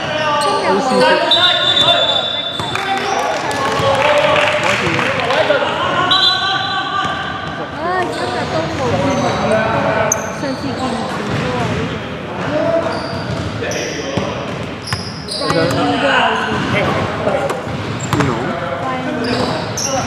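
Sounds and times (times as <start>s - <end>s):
sneakers squeaking on wood: 0.3s - 3.2s, 6.1s - 11.8s, 12.7s - 16.9s, 17.5s - 20.0s.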